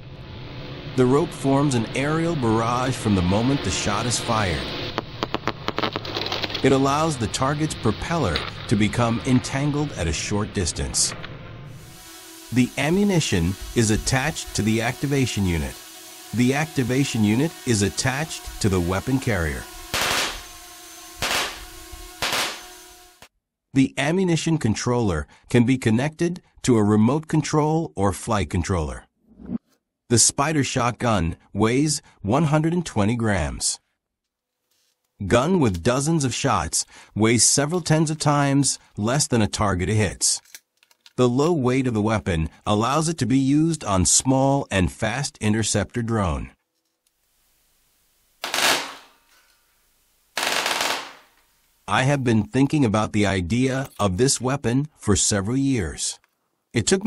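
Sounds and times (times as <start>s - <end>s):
drone motors humming: 6.4s - 23.3s
loud gunshots with ringing tail: 19.9s - 20.4s, 21.2s - 21.6s, 22.2s - 22.7s, 50.4s - 51.3s.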